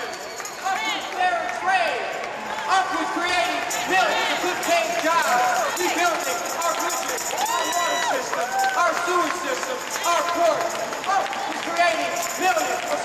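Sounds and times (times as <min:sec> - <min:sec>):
man speaking over public address: 0:00.0 - 0:13.0.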